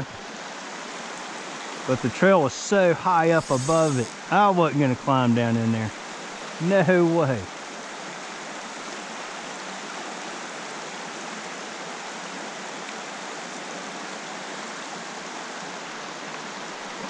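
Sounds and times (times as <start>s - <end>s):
stream flowing over rocks: 0.0s - 17.0s.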